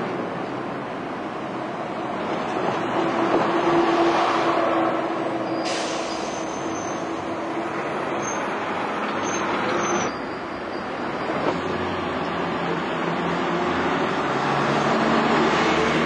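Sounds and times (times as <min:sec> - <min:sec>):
diesel bus engine: 0:00.0 - 0:16.0
air hiss: 0:05.6 - 0:06.8.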